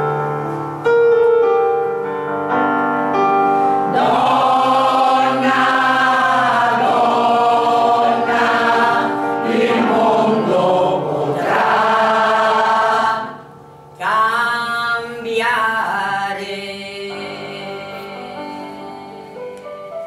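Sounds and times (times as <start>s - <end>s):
held piano chord: 0.0s - 14.0s
women's choir singing: 3.8s - 14.3s.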